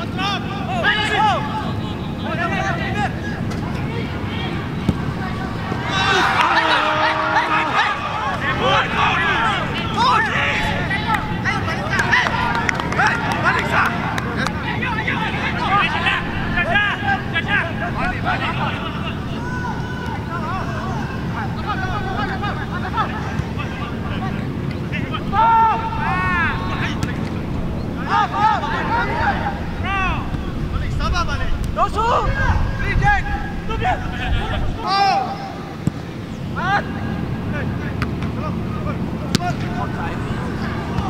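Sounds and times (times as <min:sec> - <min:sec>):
crowd rumble: 0:00.0 - 0:41.0
players shouting: 0:00.0 - 0:41.0
wind noise: 0:28.7 - 0:34.8.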